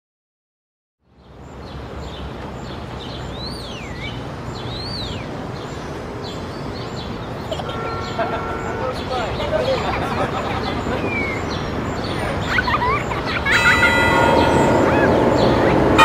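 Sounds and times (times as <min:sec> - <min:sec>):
traffic rumble: 0:01.0 - 0:16.0
birds calling: 0:01.2 - 0:16.0
swooping bird chirps: 0:02.0 - 0:16.0.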